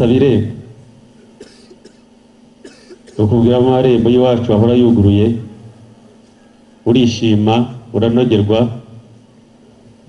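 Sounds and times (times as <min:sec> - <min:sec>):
man's voice through microphone: 0:00.0 - 0:00.8, 0:03.1 - 0:05.7, 0:06.8 - 0:09.0
faint steady hum: 0:00.0 - 0:10.0.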